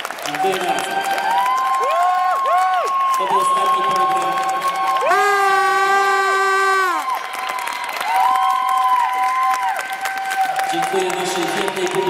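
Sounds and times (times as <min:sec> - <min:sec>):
audience cheering: 0:00.0 - 0:12.0.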